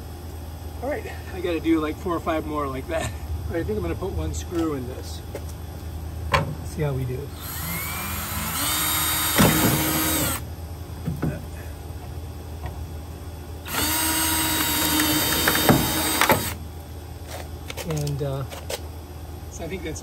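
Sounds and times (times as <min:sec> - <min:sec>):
cordless drill whining: 0:07.4 - 0:10.4, 0:13.7 - 0:16.6.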